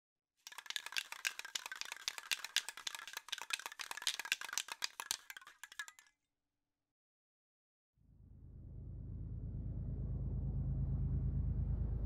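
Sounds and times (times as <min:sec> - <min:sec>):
spray can rattling: 0:00.4 - 0:06.1.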